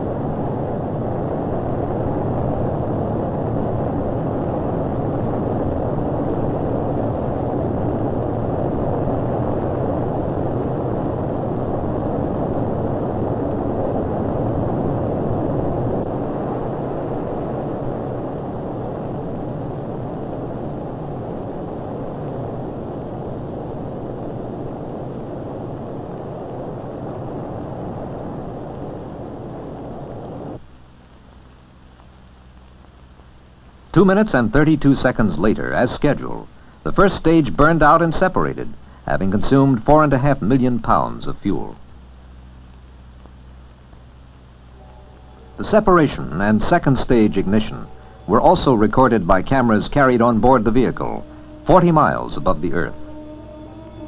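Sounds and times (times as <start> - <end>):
rocket engines rumbling: 0.0 - 42.0, 44.3 - 54.0.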